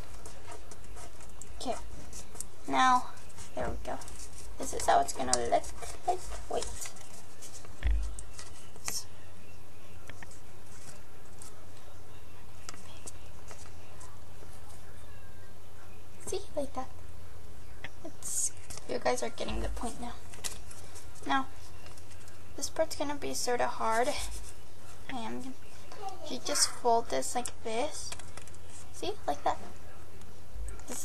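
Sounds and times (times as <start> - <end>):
paper being folded and creased: 0.0 - 8.9.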